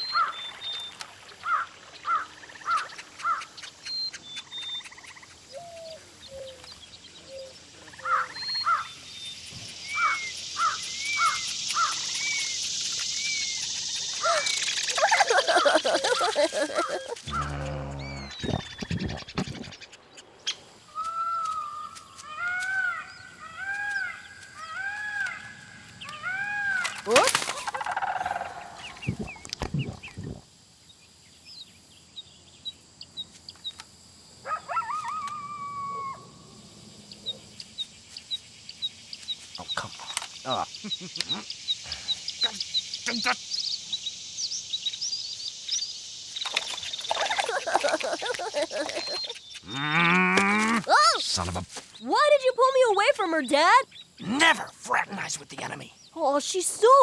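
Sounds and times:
bird chirps and calls: 0.0s - 25.4s, 37.1s - 47.6s, 48.7s - 49.8s
animal cries: 14.2s - 18.4s.

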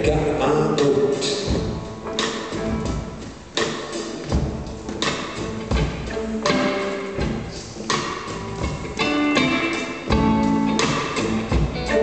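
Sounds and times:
rock band playing: 0.0s - 12.0s.

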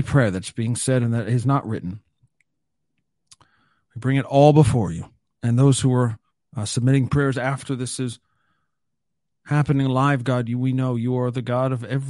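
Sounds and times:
mouth click: 3.2s - 3.5s.

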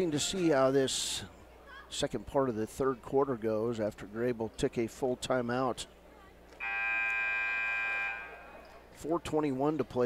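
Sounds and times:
scoreboard horn blast: 6.6s - 8.5s.

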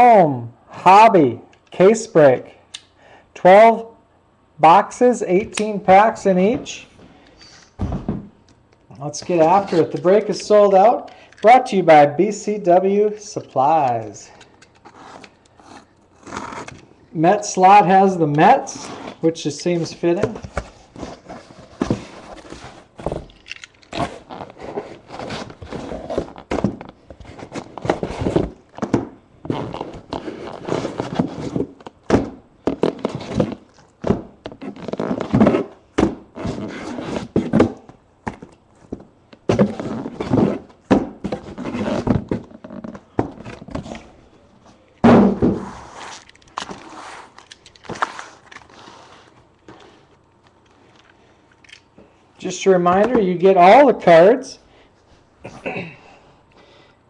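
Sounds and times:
objects thunking and knocking: 7.8s - 8.4s, 25.6s - 30.2s, 37.2s - 44.1s, 45.0s - 45.8s.

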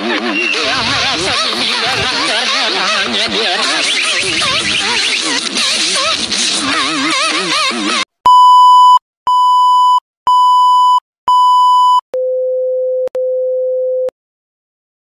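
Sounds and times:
warbling electronic sound: 0.3s - 8.0s.

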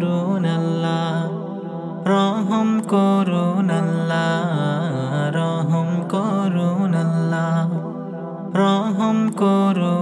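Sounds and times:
man singing ornamented melody: 0.0s - 10.0s.

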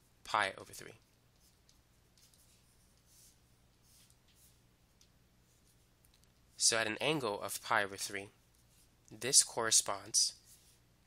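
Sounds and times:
faint low hum: 0.0s - 11.0s
stylus scratching on tablet: 0.6s - 6.6s.

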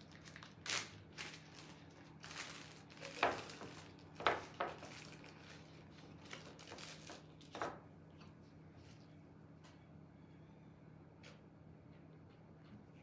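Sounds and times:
plastic bag crinkling: 0.0s - 7.8s
faint low hum: 0.0s - 13.0s.

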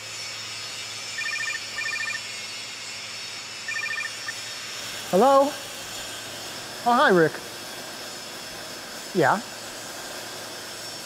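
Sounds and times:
trilled electronic ringtone: 1.2s - 2.3s, 3.7s - 4.4s.

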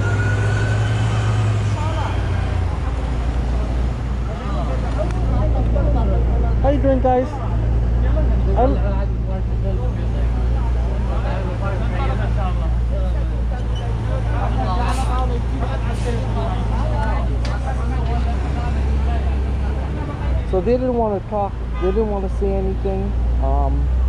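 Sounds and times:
people talking: 1.2s - 24.0s.

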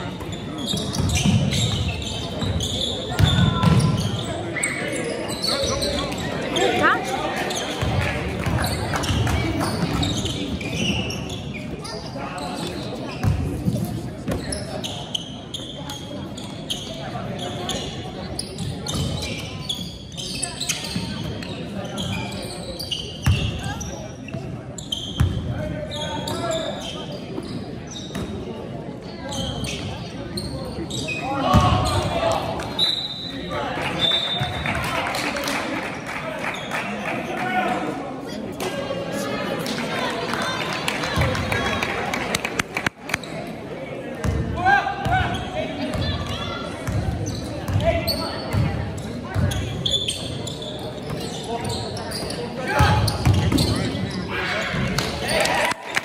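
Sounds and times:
players and spectators calling: 0.6s - 13.1s.

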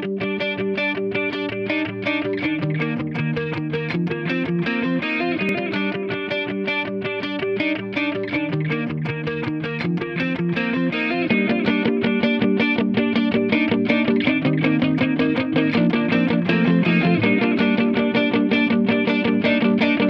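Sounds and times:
distorted electric guitar riff: 0.0s - 20.0s.

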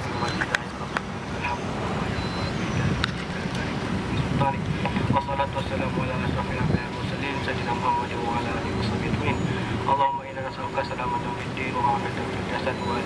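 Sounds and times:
man praying through a megaphone: 0.0s - 13.0s.

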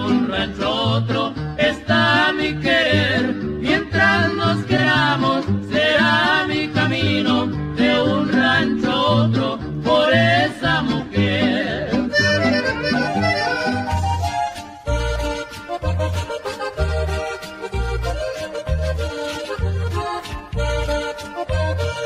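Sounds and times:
alternating bass accompaniment: 0.0s - 22.0s
button accordion melody: 12.0s - 22.0s.

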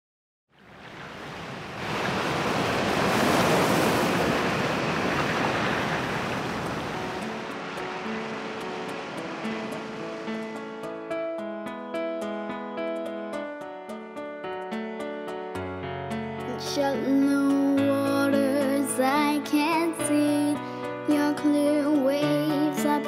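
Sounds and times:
ocean waves washing in: 0.5s - 13.2s.

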